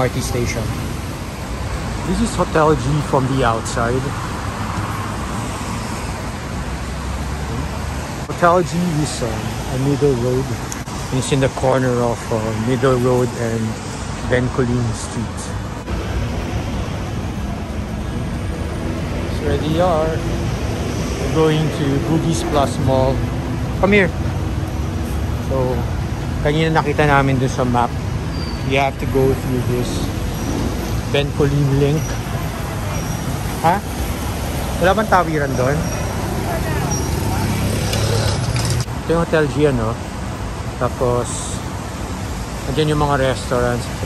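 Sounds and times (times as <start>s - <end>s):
road traffic on wet street: 0.0s - 44.0s
vehicle engines: 0.0s - 44.0s
faint voices: 30.9s - 40.1s.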